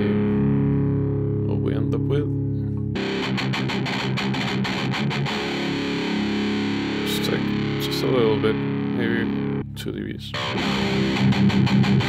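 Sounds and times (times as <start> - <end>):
distorted electric guitar riff: 0.0 - 12.0.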